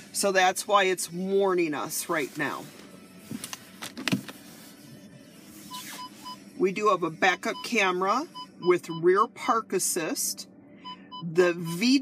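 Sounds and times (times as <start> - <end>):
park-assist warning beeps: 5.7 - 6.4, 7.3 - 9.3, 10.8 - 12.0.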